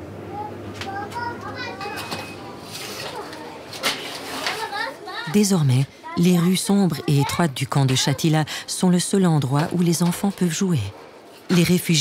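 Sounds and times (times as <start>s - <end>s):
children calling and chattering: 0.2s - 9.8s.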